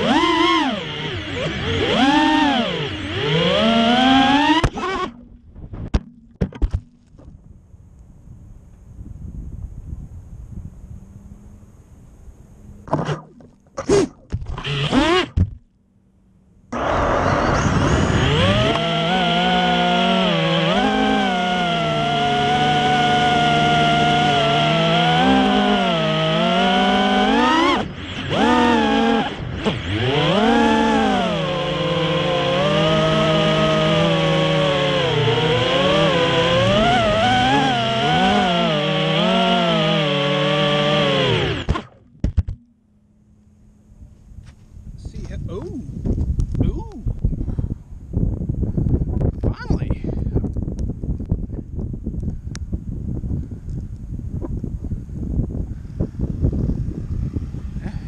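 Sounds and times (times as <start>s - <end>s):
quadcopter motors whining: 0.0s - 5.2s, 14.5s - 15.4s, 16.7s - 41.9s, 53.4s - 58.0s.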